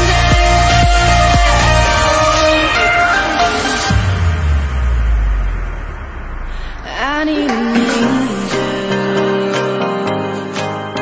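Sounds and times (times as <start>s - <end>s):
deep low rumble: 0.0s - 8.9s.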